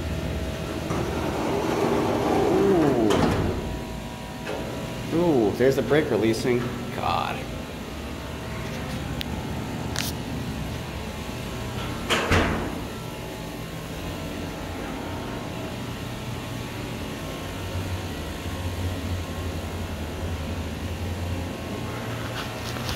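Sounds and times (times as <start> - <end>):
elevator low hum: 0.0 - 22.9.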